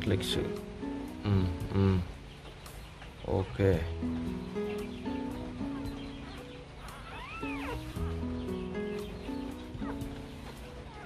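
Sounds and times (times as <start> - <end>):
background music with held notes: 0.0 - 11.0
puppy squeaking: 4.7 - 11.0.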